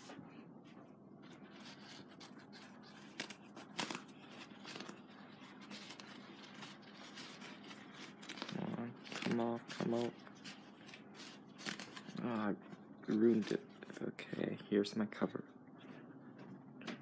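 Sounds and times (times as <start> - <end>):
paper towel rustling: 0.0 - 14.6
paper towel tearing: 1.2 - 14.0.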